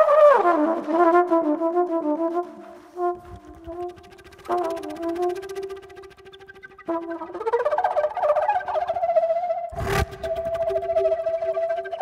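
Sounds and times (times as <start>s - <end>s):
flute and flugelhorn playing: 0.0s - 12.0s.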